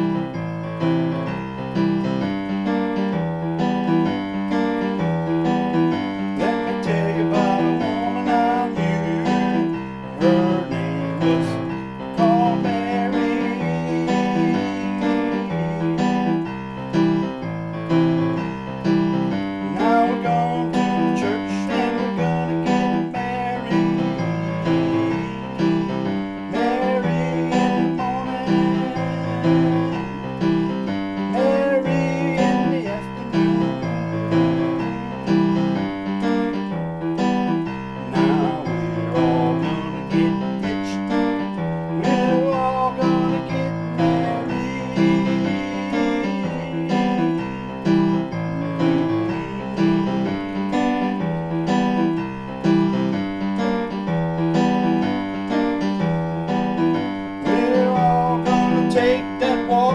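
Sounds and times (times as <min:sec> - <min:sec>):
digital piano playing country song: 0:00.0 - 0:59.9.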